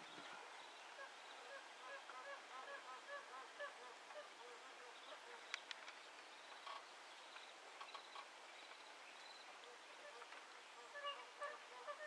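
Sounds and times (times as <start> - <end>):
geese honking faintly: 9.6 - 12.0.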